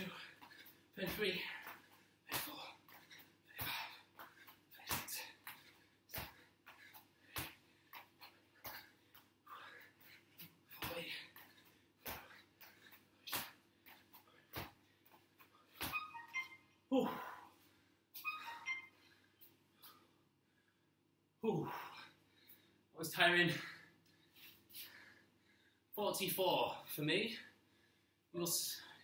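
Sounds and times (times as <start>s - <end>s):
hard breathing: 0.0s - 15.8s.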